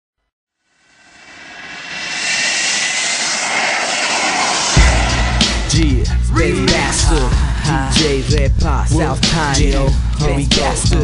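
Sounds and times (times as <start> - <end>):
rushing jet-like noise: 0.8 - 7.6.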